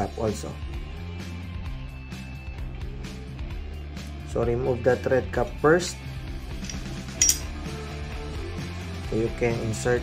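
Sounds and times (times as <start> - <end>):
rock music: 5.9 - 9.0
metallic clink: 6.5 - 7.6.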